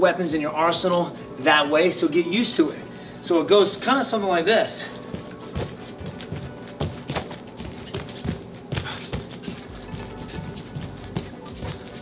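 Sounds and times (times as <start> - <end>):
background music: 0.0 - 12.0
bare feet thudding on a mat: 5.1 - 12.0.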